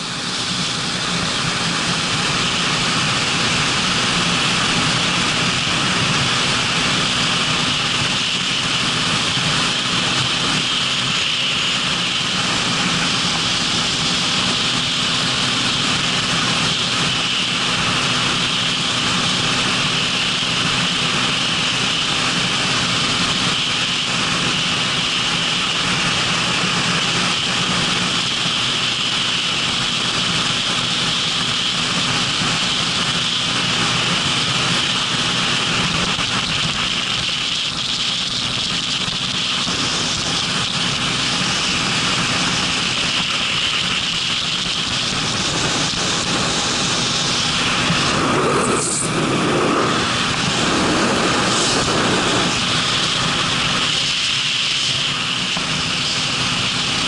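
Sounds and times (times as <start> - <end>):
motorcycle engine running: 0.0 - 57.0
wind rushing over microphone: 0.0 - 57.0.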